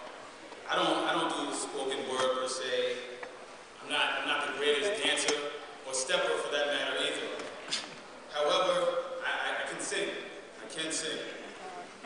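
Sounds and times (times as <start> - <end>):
man speaking over microphone: 0.7 - 3.2, 3.8 - 7.4, 8.3 - 11.5.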